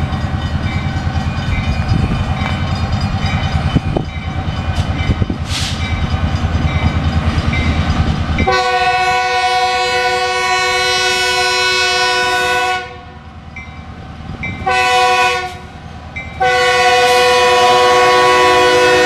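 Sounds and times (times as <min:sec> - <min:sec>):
locomotive air horn blasts: 0:08.4 - 0:13.2, 0:14.6 - 0:15.7, 0:16.4 - 0:19.0.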